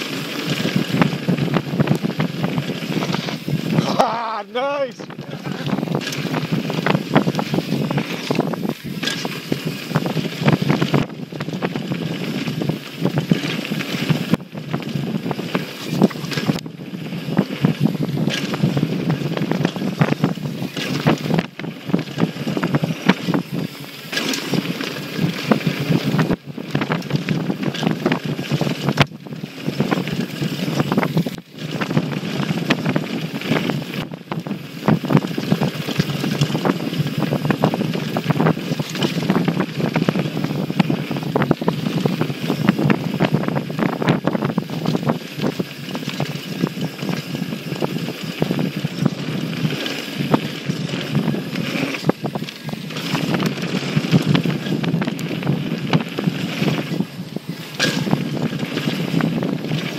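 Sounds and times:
bike rattling over bumps: 0.0 - 59.9
tyres on dirt trail: 0.0 - 59.9
wind rushing on microphone: 0.0 - 59.9.

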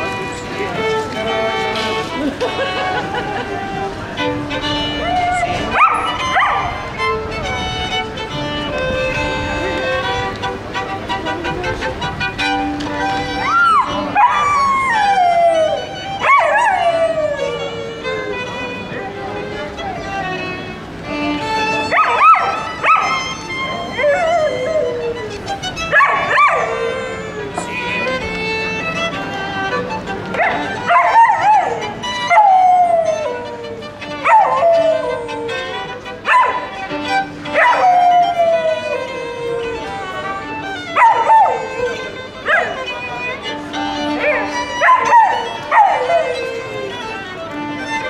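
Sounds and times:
sustained violin notes: 0.0 - 48.0
dog howling: 4.9 - 6.9, 13.4 - 17.9, 21.8 - 27.7, 30.3 - 47.1.

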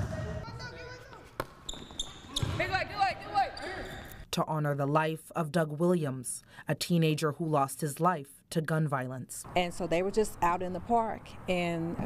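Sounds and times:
sneaker squeaks: 0.9 - 2.8, 3.5 - 4.2
basketball bouncing on gym floor: 1.4 - 2.8.

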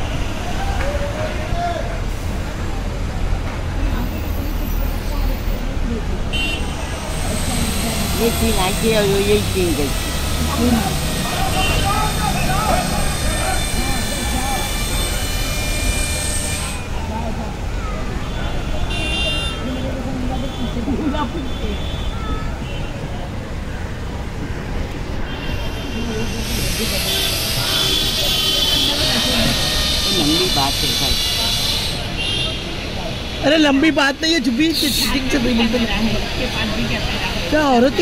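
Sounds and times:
crowd voices: 0.0 - 38.0
traffic running: 0.0 - 38.0.

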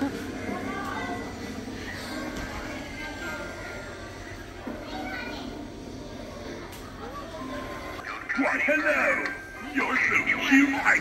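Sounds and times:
children's voices: 0.0 - 8.3
indistinct chatter: 0.0 - 11.0.

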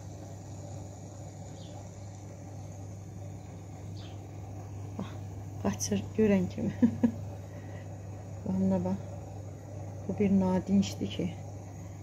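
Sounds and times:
aquarium pump humming: 0.0 - 12.0
faint hiss: 0.0 - 12.0.

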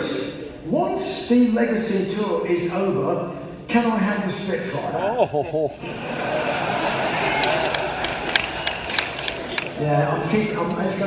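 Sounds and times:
audience laughing: 4.9 - 8.7
audience murmuring: 5.0 - 11.0
sharp hand claps: 7.3 - 9.8.

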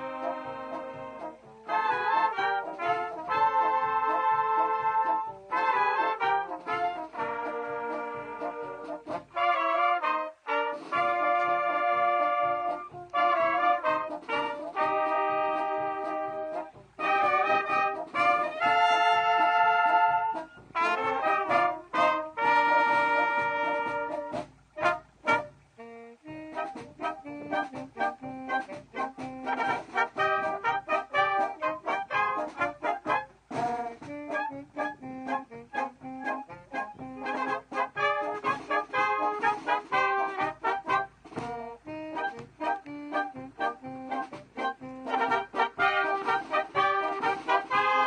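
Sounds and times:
wind band playing a tune: 0.0 - 48.0.

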